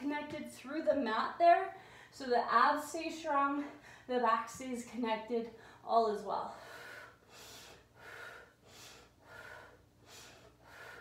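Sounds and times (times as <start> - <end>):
woman breathing in short breaths: 6.6 - 11.0.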